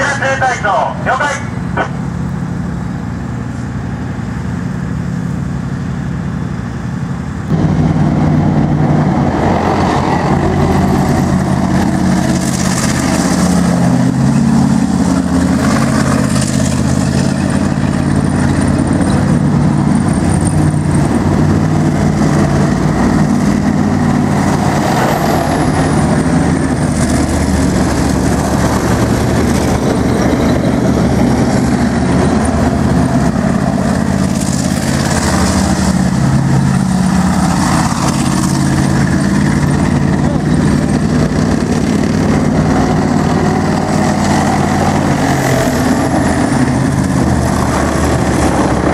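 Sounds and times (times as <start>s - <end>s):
tank diesel engine drone: 0.0s - 48.9s
tank passing close: 0.0s - 48.9s.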